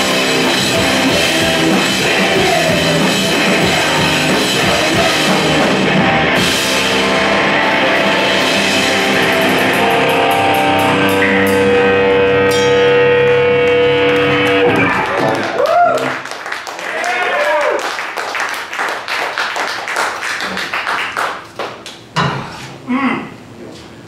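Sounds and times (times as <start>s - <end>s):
sustained guitar note: 0.0s - 15.1s
live rock band playing: 0.0s - 16.2s
crowd cheering: 13.5s - 21.4s.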